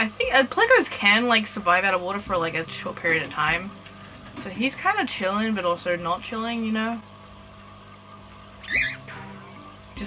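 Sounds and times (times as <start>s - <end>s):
quiet background music: 0.0s - 10.0s
cockatiel call: 8.6s - 9.1s.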